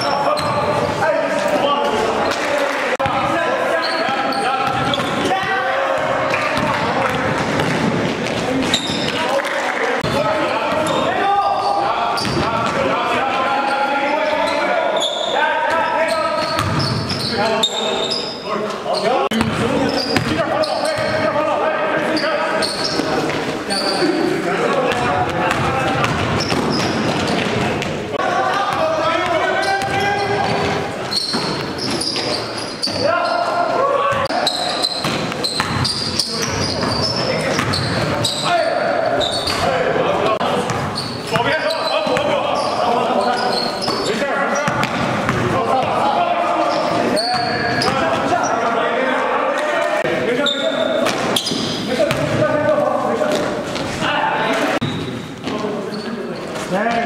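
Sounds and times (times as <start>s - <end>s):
voices echoing in gym: 0.0s - 57.0s
basketball bouncing on court: 4.0s - 5.3s, 5.9s - 9.2s, 12.2s - 12.8s, 16.4s - 17.2s, 19.3s - 21.3s, 24.9s - 28.0s, 28.7s - 33.0s, 34.9s - 38.4s, 40.7s - 41.5s, 44.6s - 46.0s, 51.0s - 52.5s.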